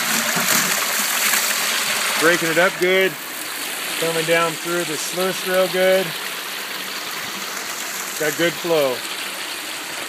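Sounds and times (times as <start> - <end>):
water rushing from hose into sluice: 0.0 - 10.0.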